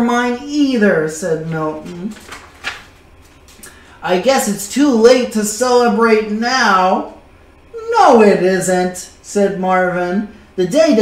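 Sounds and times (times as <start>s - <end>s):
book page turning: 1.6s - 3.7s.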